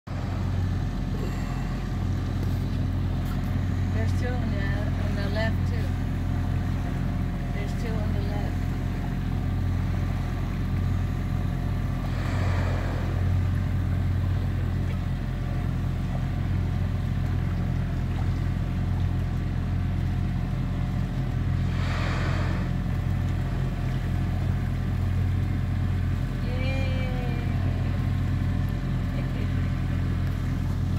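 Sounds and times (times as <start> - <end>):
boat engine idling: 0.1 - 30.9
whale blowing: 0.2 - 3.4, 9.6 - 16.9, 20.8 - 26.0.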